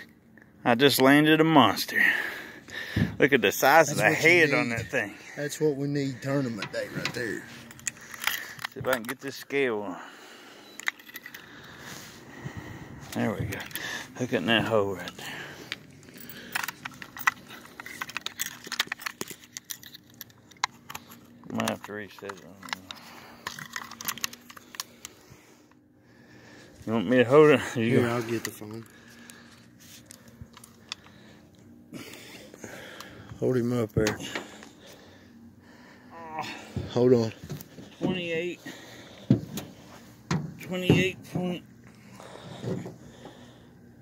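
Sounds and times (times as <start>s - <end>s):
light clicks of handling: 15.0s - 25.8s.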